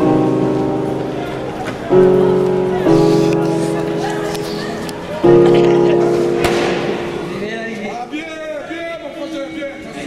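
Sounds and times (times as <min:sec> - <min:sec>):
voices: 0:01.0 - 0:06.4
sharp crack: 0:06.4 - 0:07.2.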